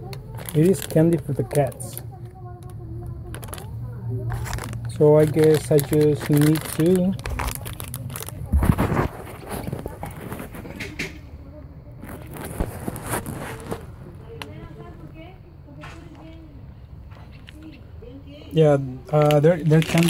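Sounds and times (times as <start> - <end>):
snack packets crinkling: 0.0 - 10.7, 12.0 - 14.5, 19.0 - 20.0.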